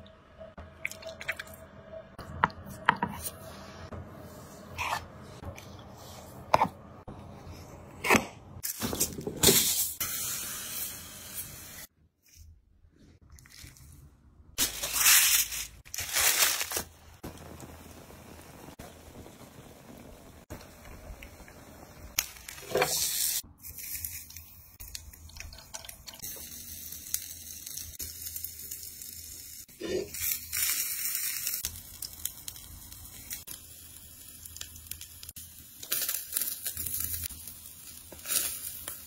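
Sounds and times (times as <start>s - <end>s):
food sizzling on a grill: 9.7s - 11.9s, 16.0s - 23.4s, 26.2s - 39.0s
aluminium foil rustling: 14.6s - 17.2s.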